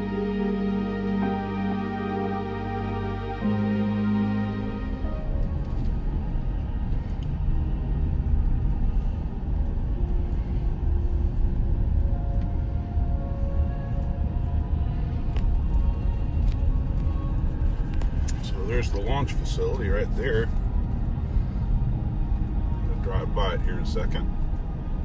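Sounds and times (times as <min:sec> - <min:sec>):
car driving rumble: 0:00.0 - 0:25.0
soft slow background music: 0:00.0 - 0:25.0.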